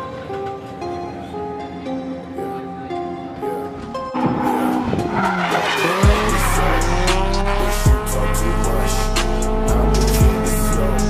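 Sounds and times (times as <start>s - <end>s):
tyres squealing: 3.9s - 7.9s
car engine revving: 4.0s - 11.0s
rap music with heavy bass: 4.2s - 11.0s.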